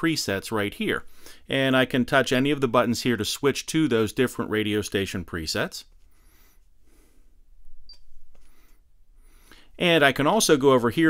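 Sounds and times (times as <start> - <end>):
faint room noise: 0.0 - 11.0.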